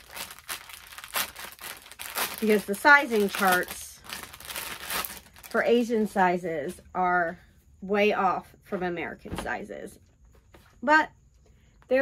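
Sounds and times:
packaging crinkling: 0:00.0 - 0:05.9.

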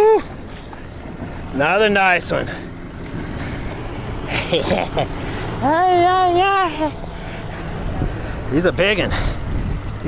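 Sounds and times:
man exclaiming ooh: 0:00.0 - 0:00.3
boat engine hum: 0:00.0 - 0:10.0
water noise: 0:00.0 - 0:10.0
wind: 0:00.0 - 0:10.0.

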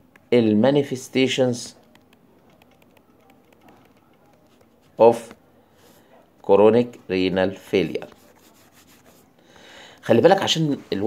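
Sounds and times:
stylus rubbing on tablet screen: 0:02.0 - 0:06.2, 0:07.6 - 0:09.4.

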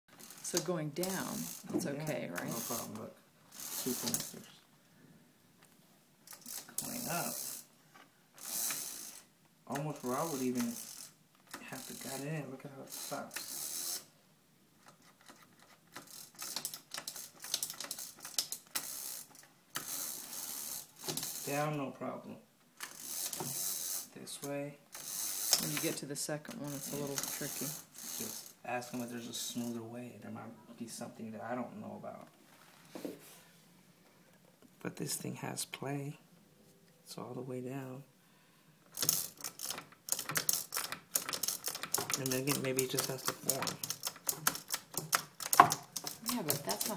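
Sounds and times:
beaded shade chain clicking and rattling: 0:00.1 - 0:04.4, 0:12.9 - 0:14.1, 0:14.9 - 0:21.6, 0:26.6 - 0:29.0, 0:38.9 - 0:46.9
bead chain rattling clicks: 0:38.9 - 0:46.9.

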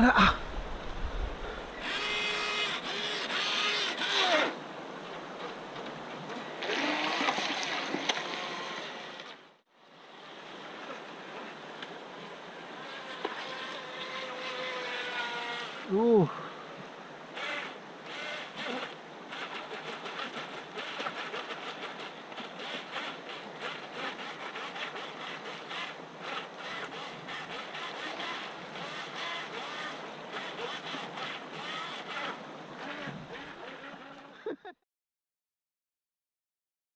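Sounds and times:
stream water over pebbles: 0:00.4 - 0:34.3.

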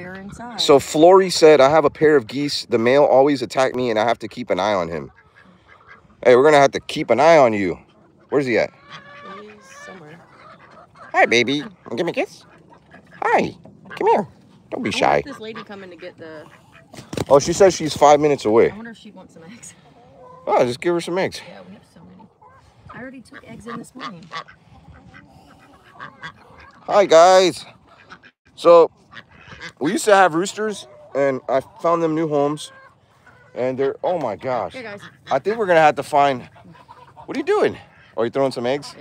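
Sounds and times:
chickens and ducks calling: 0:00.0 - 0:39.0.

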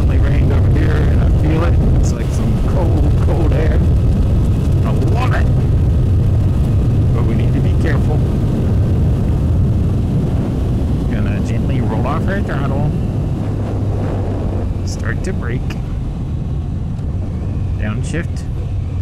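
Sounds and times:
wind rushing over microphone: 0:00.0 - 0:19.0.

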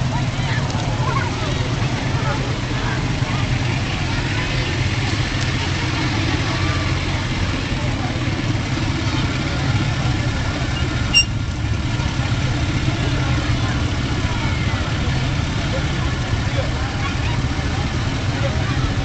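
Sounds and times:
atv engines low rumble: 0:00.0 - 0:19.0
short high beep: 0:10.8 - 0:11.4.

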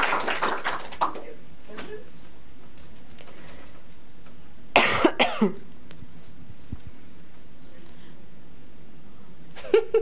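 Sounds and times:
person coughing: 0:04.8 - 0:05.6.

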